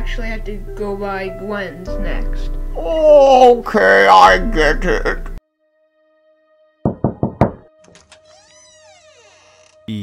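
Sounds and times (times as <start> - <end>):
knocking on a door: 6.8 - 7.7.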